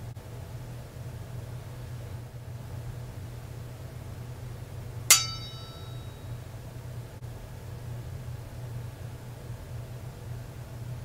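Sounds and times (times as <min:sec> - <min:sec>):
low background hum: 0:00.0 - 0:11.0
sharp bright ding: 0:05.1 - 0:06.2.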